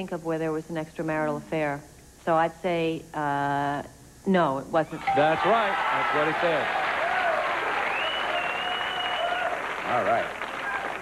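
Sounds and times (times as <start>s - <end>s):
studio audience applauding: 5.0s - 11.0s.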